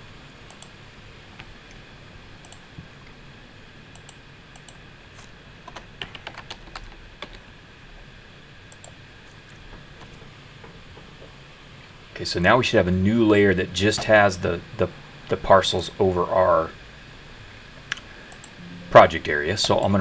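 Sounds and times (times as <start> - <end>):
low room hum: 0.0 - 20.0
keyboard typing: 5.7 - 7.4.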